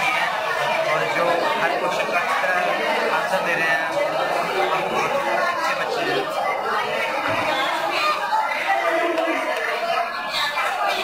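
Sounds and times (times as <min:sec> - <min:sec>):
people talking: 0:00.0 - 0:11.0
room chatter: 0:00.0 - 0:11.0.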